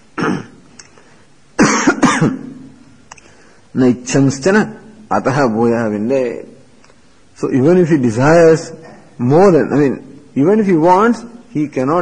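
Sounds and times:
man coughing: 0:00.2 - 0:00.6, 0:01.6 - 0:02.6.

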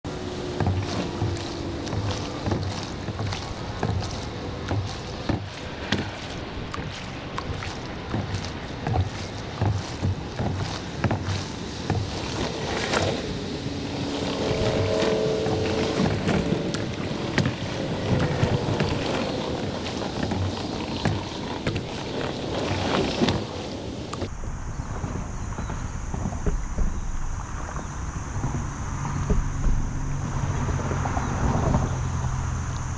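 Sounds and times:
water dripping: 0:00.1 - 0:23.4
paddle strokes in water: 0:00.1 - 0:32.9
wind on microphone: 0:00.1 - 0:32.9.

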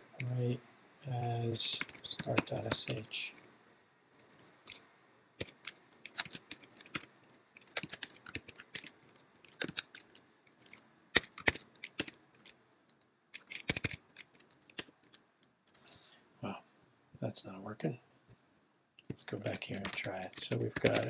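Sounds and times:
keyboard typing: 0:01.0 - 0:03.5, 0:05.4 - 0:12.6, 0:13.4 - 0:15.2, 0:19.0 - 0:21.0.

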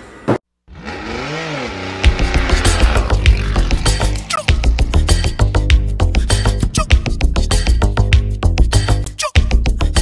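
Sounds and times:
music: 0:02.0 - 0:10.0.

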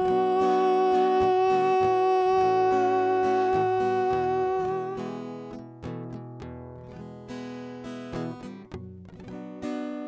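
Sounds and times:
man singing long note: 0:00.0 - 0:05.2
strummed acoustic guitar: 0:00.0 - 0:10.0.

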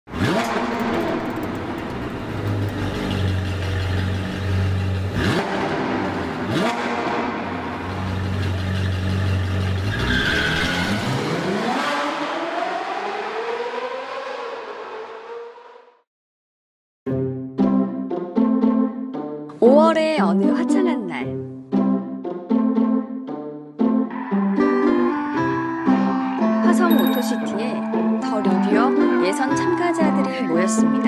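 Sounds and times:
sports car engine revving: 0:00.1 - 0:15.8.

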